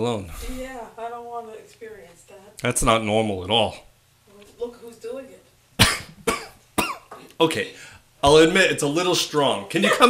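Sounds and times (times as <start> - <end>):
man coughing: 5.8 - 7.2.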